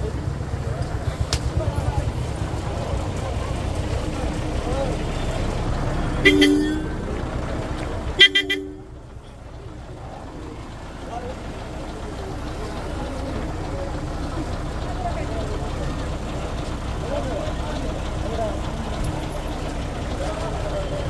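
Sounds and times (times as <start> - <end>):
crowd chatter: 0.0 - 21.0
vehicle horn blasts: 6.1 - 7.0, 8.2 - 9.0.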